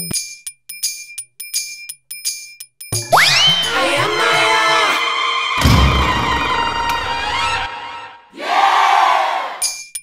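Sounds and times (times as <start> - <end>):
low boom under held chord: 5.6 - 7.7
shout of many voices: 8.3 - 9.6.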